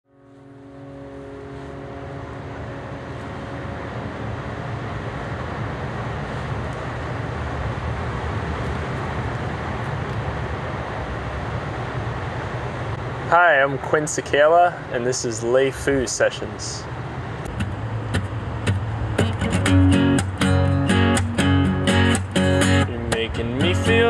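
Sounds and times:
continuous low rumble: 0.1s - 24.0s
faint steady hum tones: 0.1s - 24.0s.

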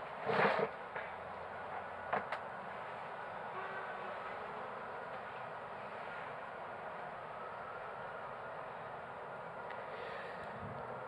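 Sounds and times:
city background noise: 0.0s - 11.0s.

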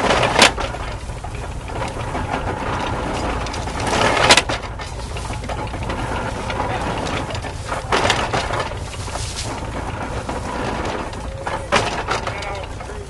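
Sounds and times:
hay baler plunger crunching: 0.0s - 13.0s
tractor engine drone: 0.0s - 13.0s.

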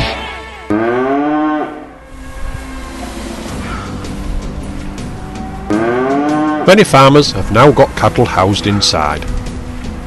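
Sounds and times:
cow mooing: 0.7s - 2.2s, 5.0s - 6.8s.

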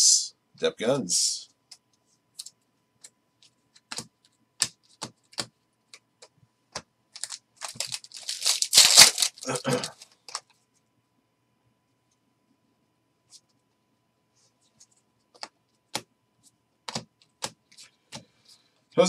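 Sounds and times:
foil card pack crinkling: 7.2s - 10.4s.

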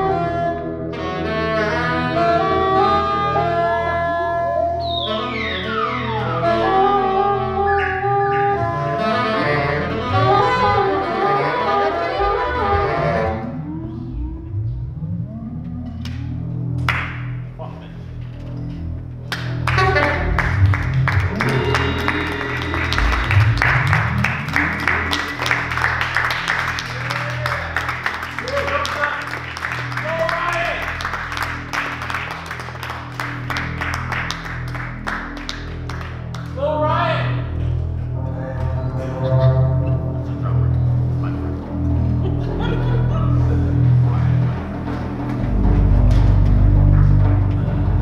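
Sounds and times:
steady low drone: 0.0s - 36.6s, 37.3s - 48.0s
sliding pitched lines: 3.5s - 30.1s.

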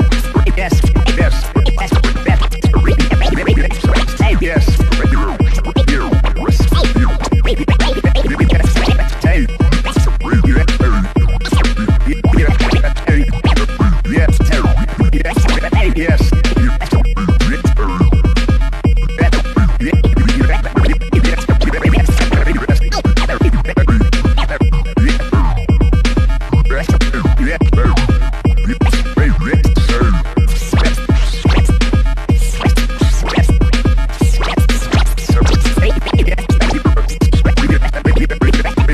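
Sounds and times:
electro beat with deep kick drums: 0.0s - 38.9s
turntable scratching: 0.0s - 38.9s.

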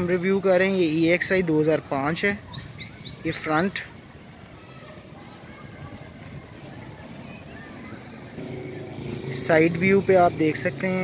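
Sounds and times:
vehicle engine humming: 5.9s - 11.0s.

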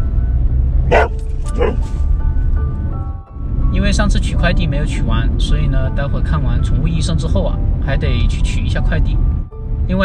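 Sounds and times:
background music: 0.0s - 10.0s
low road rumble: 0.0s - 10.0s
dog barking: 0.9s - 1.9s.

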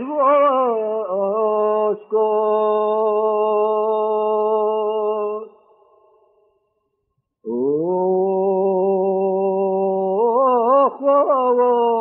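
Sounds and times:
man singing unaccompanied: 0.0s - 5.6s, 7.5s - 12.0s.

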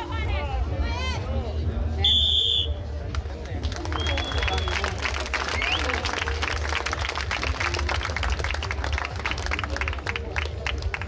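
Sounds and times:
spectators clapping: 3.1s - 11.0s.

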